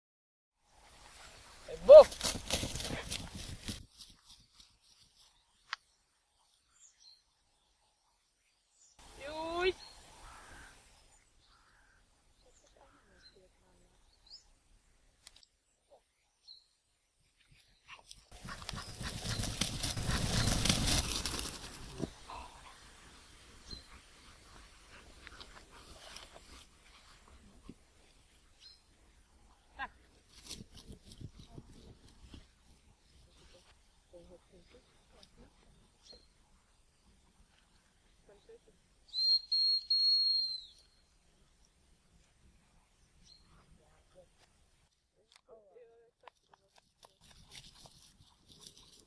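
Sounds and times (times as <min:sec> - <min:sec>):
dog galloping across grass: 0:01.0 - 0:05.3, 0:18.0 - 0:28.1, 0:46.8 - 0:49.0
training whistle high note: 0:39.1 - 0:40.8.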